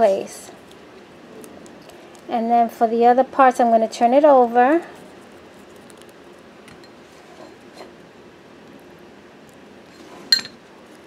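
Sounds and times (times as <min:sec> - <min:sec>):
paper handling ticks: 0:05.5 - 0:06.4.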